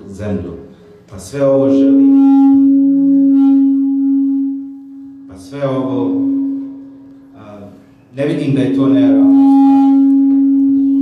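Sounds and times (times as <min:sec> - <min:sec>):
microphone feedback tone: 0:01.4 - 0:11.0.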